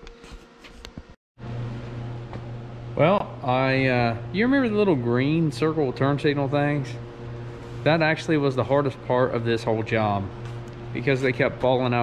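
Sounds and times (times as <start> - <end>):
steady low hum: 1.4 - 12.0.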